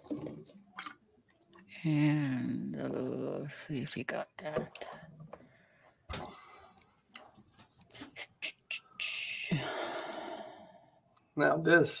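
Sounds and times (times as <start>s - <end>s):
breathy exhale: 9.5s - 10.8s.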